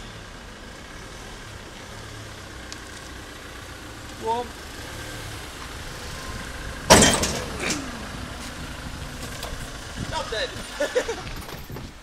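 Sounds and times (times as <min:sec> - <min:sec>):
van engine idling: 0:00.0 - 0:11.7.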